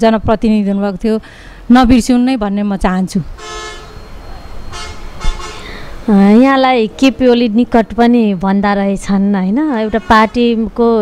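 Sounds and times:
vehicle horn honking: 3.4 - 5.8, 9.7 - 10.6.

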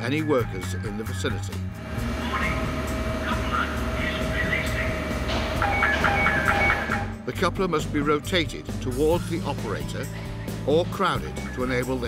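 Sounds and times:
low machine hum: 1.7 - 7.2
warning alarm beeping: 1.8 - 7.2.

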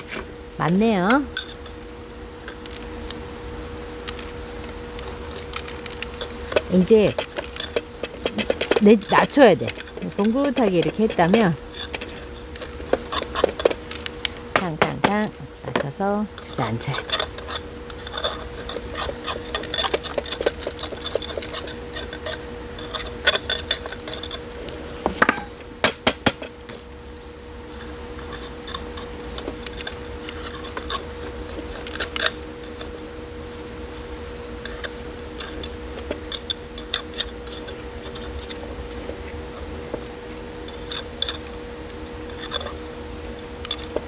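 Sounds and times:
spoon scraping gritty soil: 1.4 - 14.4, 16.4 - 24.5, 27.7 - 38.7, 40.6 - 44.0.

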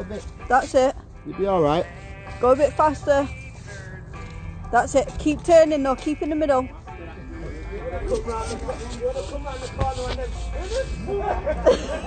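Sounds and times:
indistinct voices talking quietly: 4.8 - 11.7.

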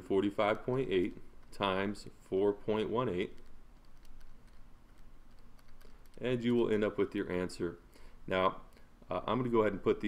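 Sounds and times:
low steady hum: 0.0 - 10.0
calculator keys clicking: 3.3 - 4.6, 5.3 - 6.3.

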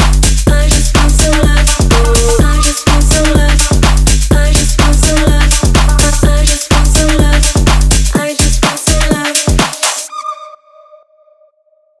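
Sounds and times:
held synth tone: 10.1 - 11.5.

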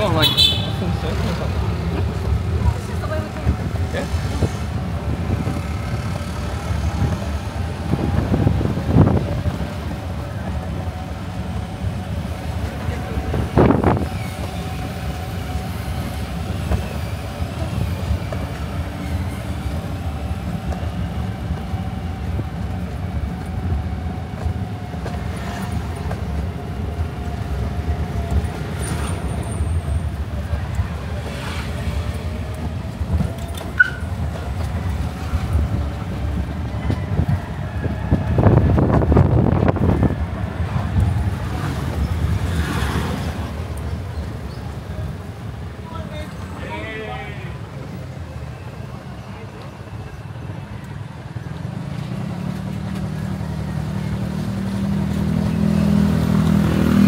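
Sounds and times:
motorised tricycle engine rumble: 0.0 - 46.6, 47.6 - 57.0.

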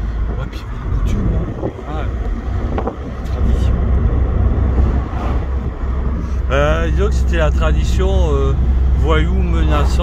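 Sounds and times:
car engine and road noise: 0.0 - 10.0.

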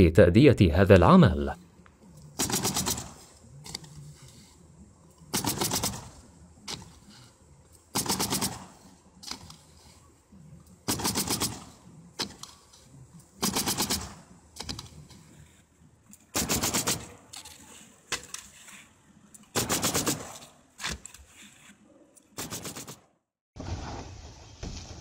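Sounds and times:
nail gun firing into shingles: 2.4 - 3.2, 5.3 - 7.0, 7.9 - 9.5, 10.8 - 12.5, 13.4 - 14.9, 16.3 - 17.3, 19.5 - 20.5, 22.4 - 23.0.

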